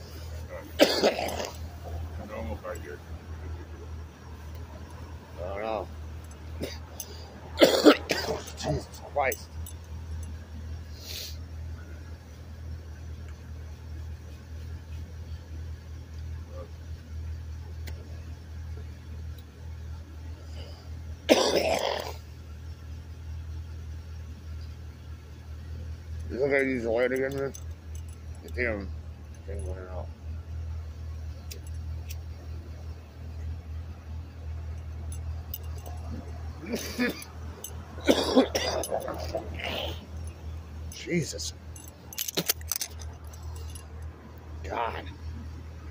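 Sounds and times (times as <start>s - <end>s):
minibus engine idling: 0.0s - 45.9s
steady low hum: 0.0s - 45.9s
person coughing: 0.8s - 1.6s, 6.6s - 6.8s, 7.6s - 8.7s, 21.3s - 22.2s, 36.6s - 37.3s, 38.0s - 40.0s
clatter of clicks and jingles: 4.5s - 10.5s, 25.7s - 30.2s, 34.3s - 44.1s.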